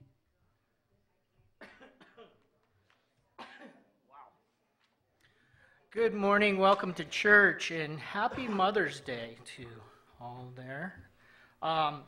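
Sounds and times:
short coughs: 1.6s - 2.4s, 3.4s - 3.9s.

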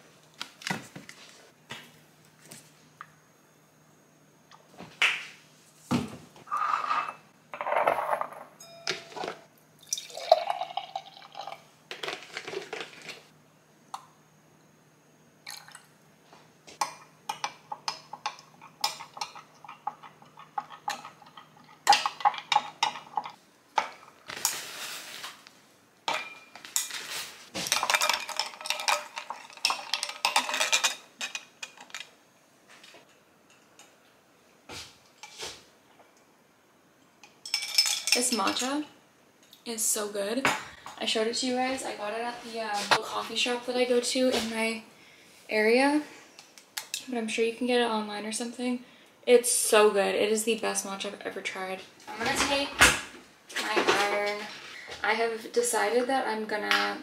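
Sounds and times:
glass and utensils clinking: 6.6s - 11.6s, 37.4s - 38.8s
liquid pouring into glass: 9.8s - 11.6s, 15.5s - 15.9s.

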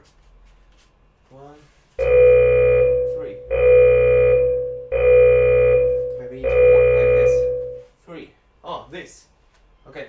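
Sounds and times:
timer long beeps: 2.0s - 7.9s
person speaking: 6.1s - 7.7s.

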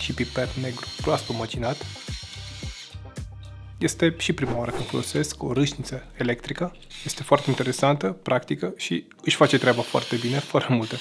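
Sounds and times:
electric pepper grinder motor: 0.0s - 3.0s, 9.5s - 11.0s.

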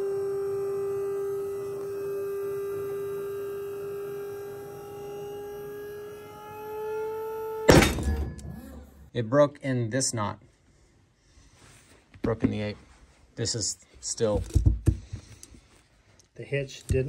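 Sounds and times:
pull-test rig whine: 0.0s - 9.1s.

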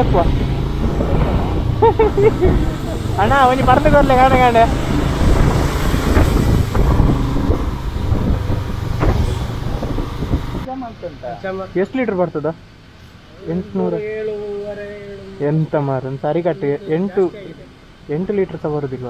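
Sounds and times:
motorcycle engine running: 0.0s - 10.7s
wind and road noise: 0.0s - 14.3s, 15.0s - 19.0s
person humming or calling out: 14.1s - 15.6s.

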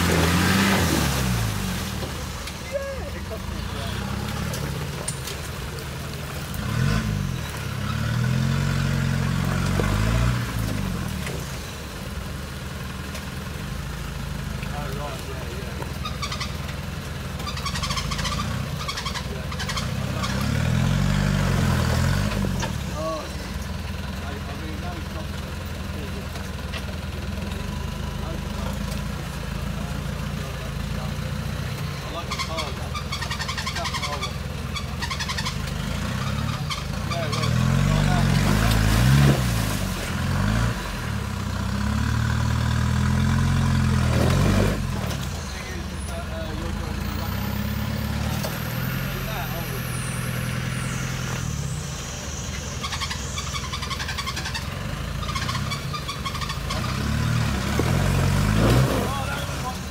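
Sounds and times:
vehicle engine revving under load: 0.0s - 59.9s.

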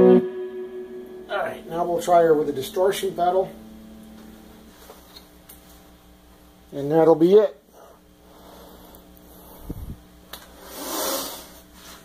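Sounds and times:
amp hum and hiss: 0.0s - 12.0s.

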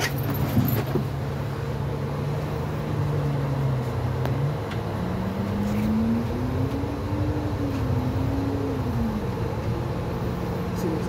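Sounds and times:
bus engine droning: 0.0s - 11.0s
road noise: 0.0s - 11.0s.

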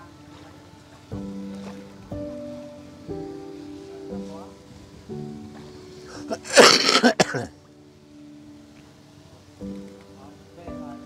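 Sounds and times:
background music with held notes: 0.0s - 11.0s
person laughing: 6.1s - 7.5s.

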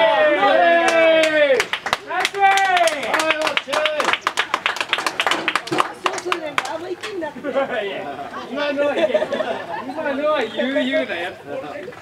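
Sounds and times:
people shouting calls: 0.0s - 4.1s
hands clapping quickly: 0.9s - 7.2s.

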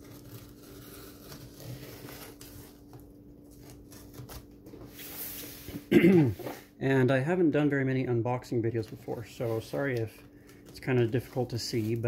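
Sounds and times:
cardboard rustling: 8.7s - 12.0s.

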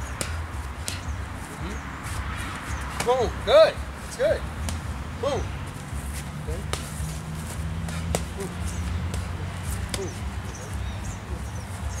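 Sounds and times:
boxing gloves slapping mitts: 0.1s - 1.1s, 2.1s - 3.3s, 4.6s - 5.0s, 5.8s - 10.9s.

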